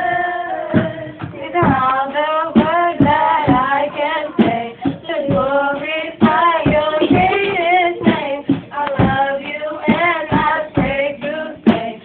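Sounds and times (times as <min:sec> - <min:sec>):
low rhythmic thumps: 0:00.0 - 0:12.0
women singing gospel song: 0:00.0 - 0:12.0.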